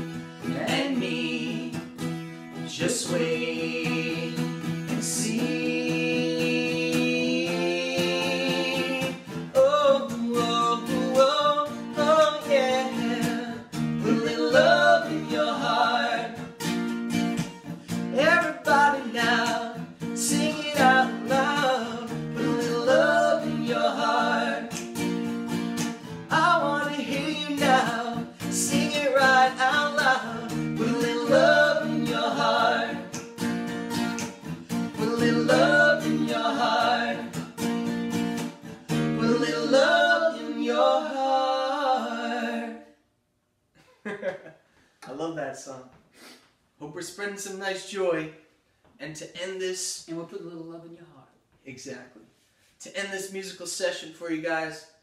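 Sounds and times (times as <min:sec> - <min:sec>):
acoustic guitar strumming: 0:00.0 - 0:42.7
man singing: 0:00.4 - 0:01.8, 0:02.6 - 0:16.5, 0:18.1 - 0:24.8, 0:26.3 - 0:33.2, 0:34.9 - 0:37.4, 0:39.1 - 0:42.8.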